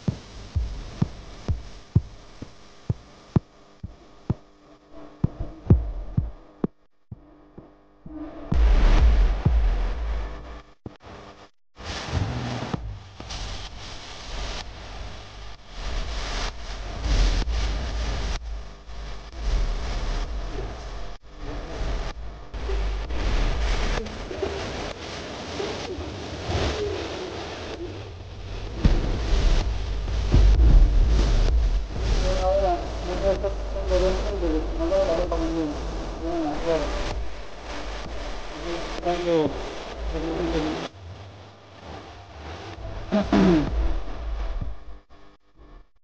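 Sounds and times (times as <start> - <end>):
low wavering voice-like sounds: 19.0 - 41.0, 41.8 - 44.8.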